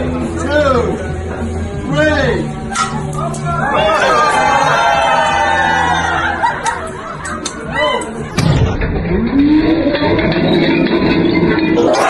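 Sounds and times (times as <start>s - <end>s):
onlookers shouting: 3.4s - 6.4s.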